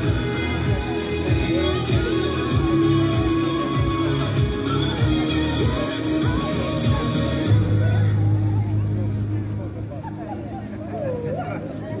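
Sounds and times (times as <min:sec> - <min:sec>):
dance music: 0:00.0 - 0:09.1
people talking: 0:00.0 - 0:12.0.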